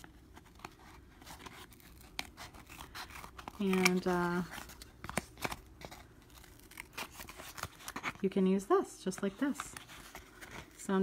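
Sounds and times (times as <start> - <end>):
scissors cutting cardboard: 0.4 - 8.2.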